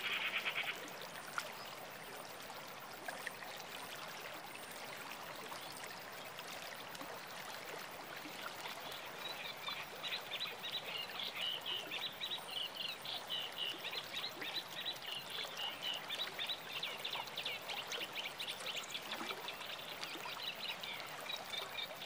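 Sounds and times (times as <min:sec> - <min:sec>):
rushing water: 0:00.0 - 0:22.0.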